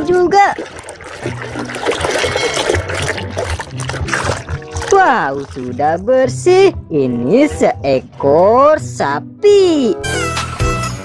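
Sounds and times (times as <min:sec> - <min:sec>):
water splashing and trickling: 0:00.0 - 0:08.7
hand scrubbing toy in water: 0:00.0 - 0:09.1
background music: 0:00.0 - 0:11.0.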